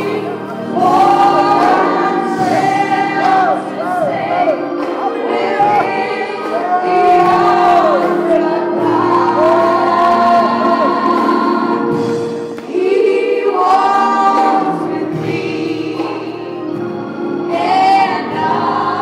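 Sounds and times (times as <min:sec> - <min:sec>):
gospel choir singing: 0:00.0 - 0:19.0.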